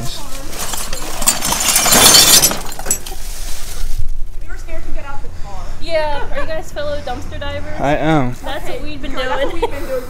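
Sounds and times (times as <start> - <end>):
plastic bags rustling: 0.0 - 4.2
broken glass clinking: 0.5 - 3.3.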